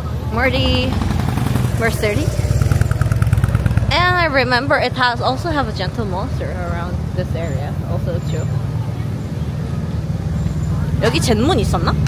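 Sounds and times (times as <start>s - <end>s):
motorcycle engine passing: 0.3s - 12.0s.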